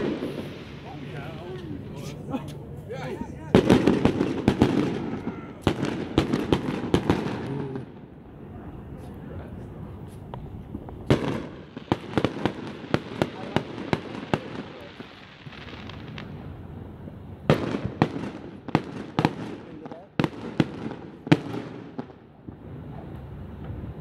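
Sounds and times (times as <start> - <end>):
fireworks bangs: 0.0 - 24.0
fireworks crackling: 0.0 - 24.0.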